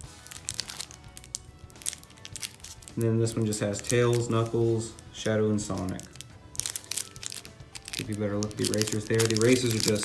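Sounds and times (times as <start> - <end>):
cellophane crinkling: 0.0 - 10.0.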